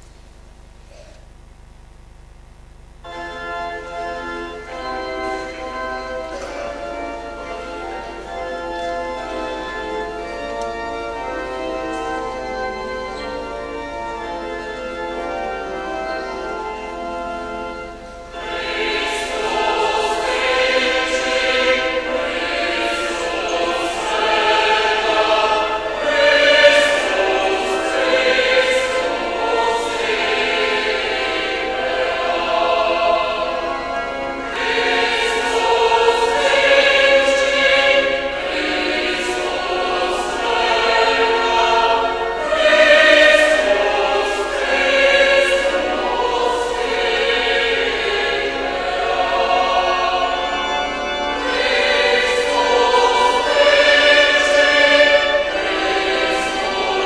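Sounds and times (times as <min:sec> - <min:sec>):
choir singing a hymn: 0:03.0 - 0:57.0.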